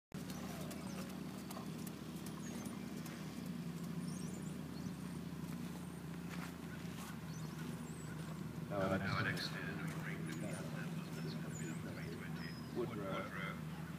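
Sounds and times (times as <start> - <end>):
horse hoofbeats on soft ground: 0.1 - 12.2
steady low hum: 0.2 - 13.9.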